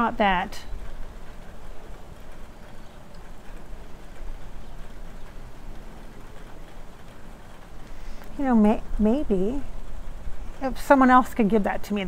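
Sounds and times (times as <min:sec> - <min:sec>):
light rain pattering: 0:00.0 - 0:12.0.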